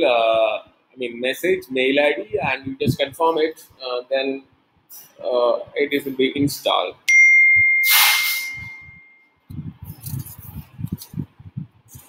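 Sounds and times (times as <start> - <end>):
electronic ding: 7.1 - 9.2
short hiss: 7.8 - 8.6.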